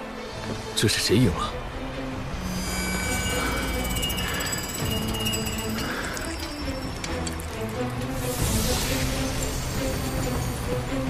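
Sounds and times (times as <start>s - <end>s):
high metallic ringing: 2.4s - 7.5s.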